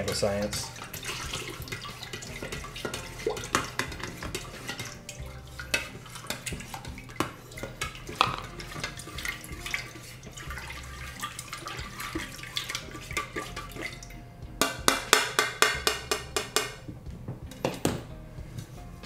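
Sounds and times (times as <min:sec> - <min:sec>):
kitchenware clattering on countertop: 0:00.0 - 0:10.5, 0:14.6 - 0:16.8
spatula knocking inside pitcher: 0:05.7 - 0:09.0, 0:14.6 - 0:16.8.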